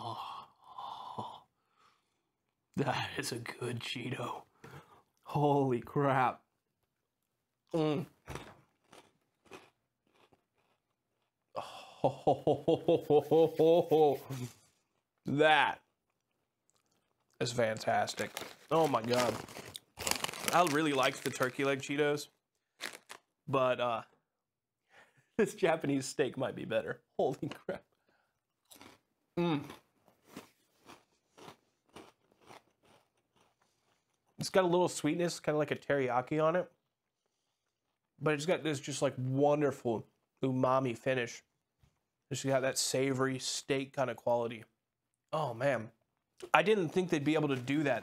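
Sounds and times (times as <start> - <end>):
chewing crunchy snack: 8.2 - 11.6, 16.0 - 21.6, 22.8 - 23.3, 28.6 - 34.4.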